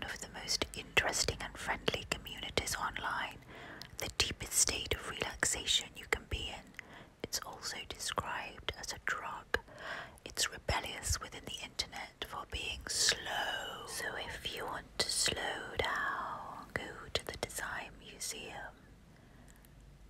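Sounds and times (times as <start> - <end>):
person whispering: 7.2 - 18.8.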